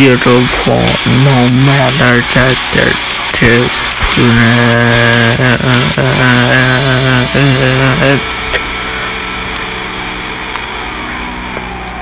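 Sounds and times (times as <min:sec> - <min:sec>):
man singing with vibrato: 0:00.0 - 0:08.6.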